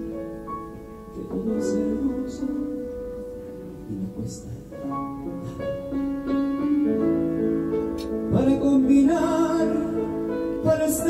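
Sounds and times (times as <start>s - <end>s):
piano playing: 0.0s - 11.0s.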